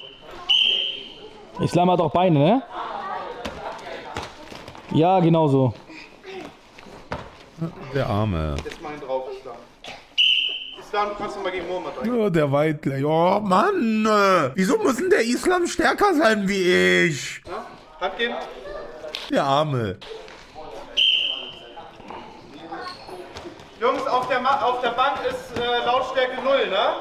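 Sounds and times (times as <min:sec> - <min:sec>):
referee's whistle blast: 0:00.0 - 0:01.2, 0:10.2 - 0:10.8, 0:21.0 - 0:21.6.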